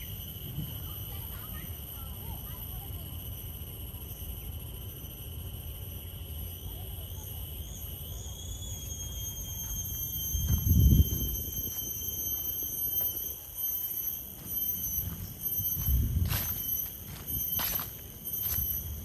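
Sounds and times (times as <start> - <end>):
high-pitched insect drone: 0.0 - 19.0
footsteps on dry leaves: 14.2 - 19.0.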